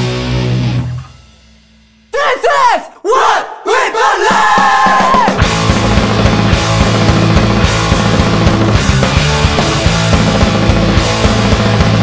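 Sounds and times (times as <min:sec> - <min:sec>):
loud shouted vocals: 0:02.1 - 0:05.5.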